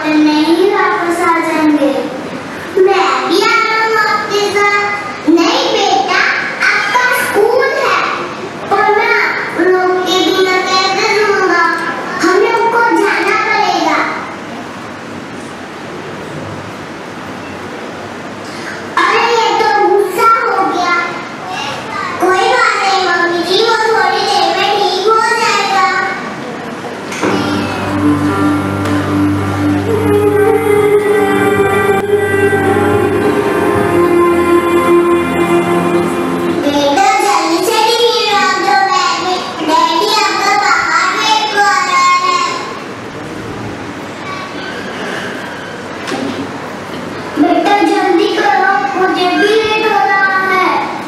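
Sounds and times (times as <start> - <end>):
child speaking: 0.0 - 2.2, 2.8 - 14.3, 19.0 - 26.4, 36.6 - 42.8, 47.4 - 51.0
faint voices: 0.0 - 51.0
large hall background noise: 0.0 - 51.0.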